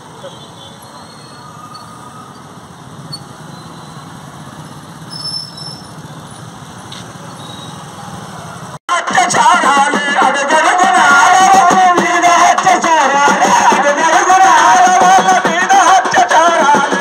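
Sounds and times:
loud song with music: 8.9s - 17.0s.

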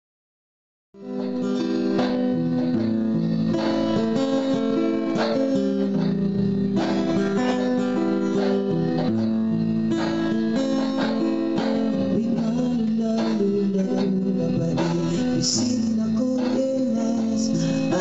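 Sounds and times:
acoustic guitar strumming chords: 1.0s - 18.0s.

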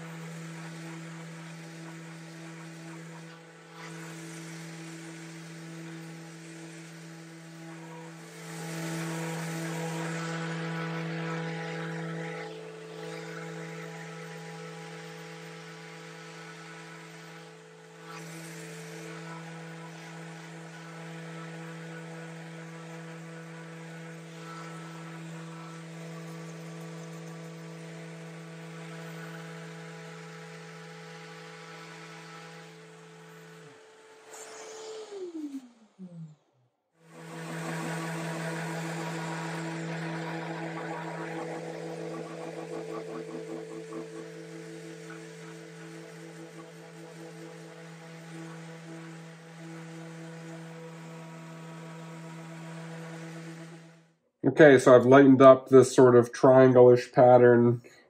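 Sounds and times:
electric sander humming: 0.0s - 54.1s.

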